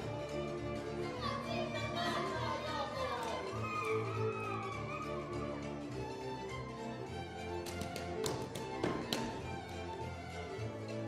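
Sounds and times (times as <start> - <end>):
folk dance music with fiddle: 0.0 - 11.0
boots tapping on stage floor: 7.6 - 9.9.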